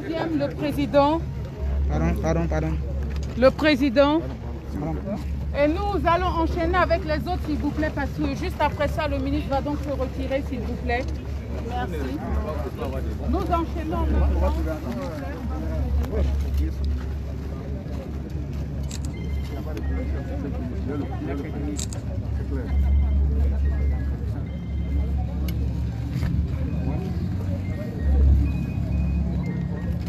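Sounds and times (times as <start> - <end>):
crowd voices: 0.0 - 30.0
faint music: 4.2 - 30.0.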